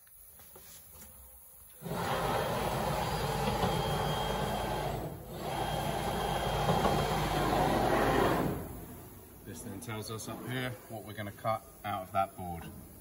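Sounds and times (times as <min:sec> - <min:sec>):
saw carriage drive running: 0:01.8 - 0:08.7.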